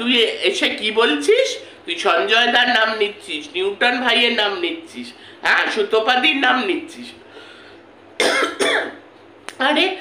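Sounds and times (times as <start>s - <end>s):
woman coughing: 8.2s - 9.0s.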